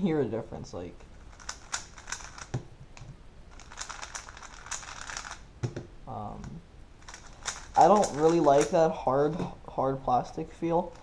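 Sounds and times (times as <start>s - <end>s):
puzzle cube plastic clicks: 1.2s - 5.8s, 6.4s - 8.8s.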